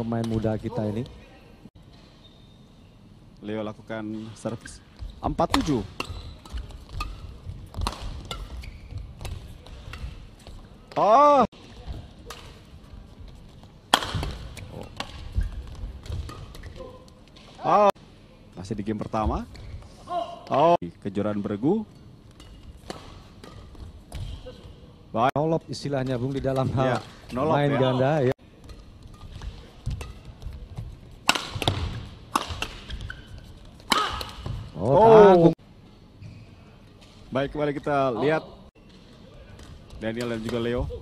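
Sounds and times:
racket striking shuttlecock: 0:05.5 - 0:08.6, 0:13.9 - 0:16.8, 0:28.6 - 0:30.6, 0:31.2 - 0:34.7.

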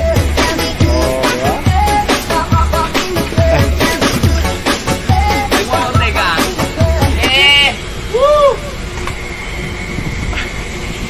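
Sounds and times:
machinery noise: 0:00.0 - 0:11.0
thin high whine: 0:00.0 - 0:11.0.

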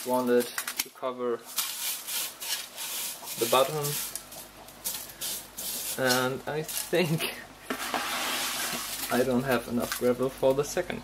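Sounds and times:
gravel scraping on glass: 0:01.5 - 0:07.0.

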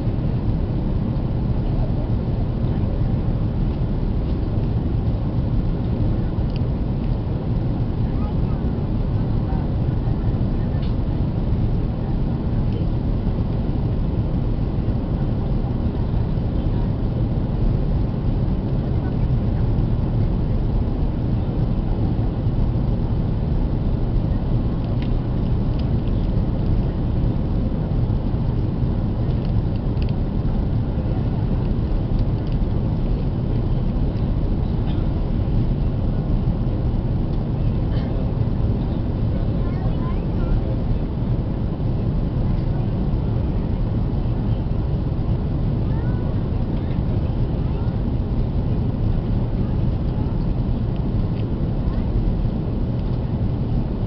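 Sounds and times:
airliner cabin engine rumble: 0:00.0 - 0:54.0.

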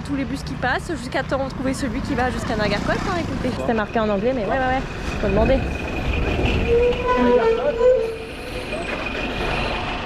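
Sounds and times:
bus engine rumble: 0:00.0 - 0:10.0.

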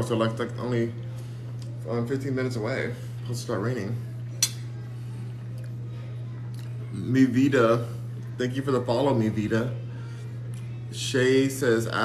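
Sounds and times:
steady low hum: 0:00.0 - 0:12.0
fork clinking on plate: 0:04.4 - 0:04.7.

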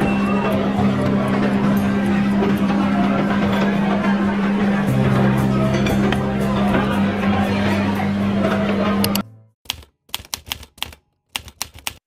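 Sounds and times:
sharp keystroke-like clicks: 0:09.0 - 0:12.0.

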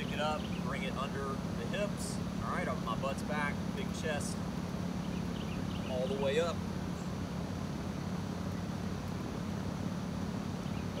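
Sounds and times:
air conditioning units humming: 0:00.0 - 0:11.0.

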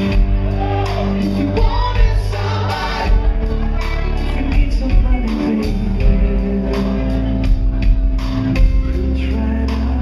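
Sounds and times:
electric bass and guitar: 0:00.0 - 0:10.0
man singing: 0:00.9 - 0:10.0.

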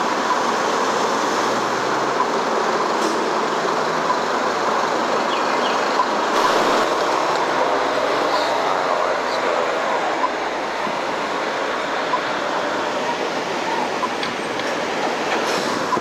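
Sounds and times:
street traffic rushing: 0:00.0 - 0:16.0.

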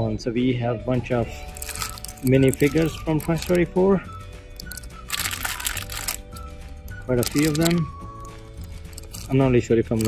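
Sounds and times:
faint background music: 0:00.0 - 0:10.0
plastic foil packets crinkling: 0:01.4 - 0:03.7, 0:04.6 - 0:06.5, 0:07.1 - 0:10.0.

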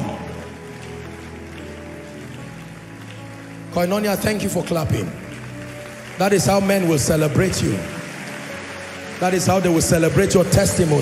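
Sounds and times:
keyboard playing slow soft chords: 0:00.0 - 0:11.0.

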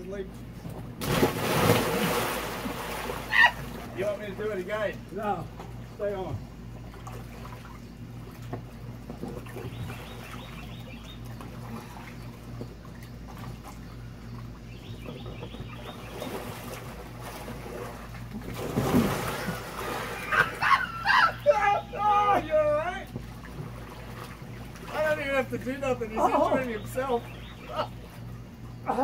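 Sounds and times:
water splashing: 0:01.0 - 0:04.7, 0:16.0 - 0:21.0, 0:21.6 - 0:28.3
people yelling: 0:03.3 - 0:03.6, 0:20.2 - 0:23.1
people laughing loudly: 0:20.2 - 0:21.5.

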